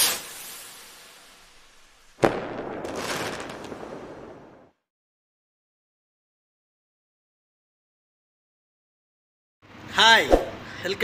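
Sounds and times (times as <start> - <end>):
swoosh: 10.3 - 10.6.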